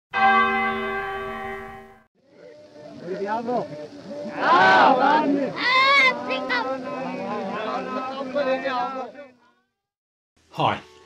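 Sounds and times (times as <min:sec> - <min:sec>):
bell-like chime: 0:00.2 - 0:02.0.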